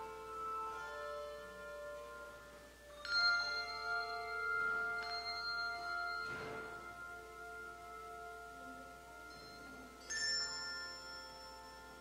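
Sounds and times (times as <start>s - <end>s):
bell-like instrumental music: 0.0s - 12.0s.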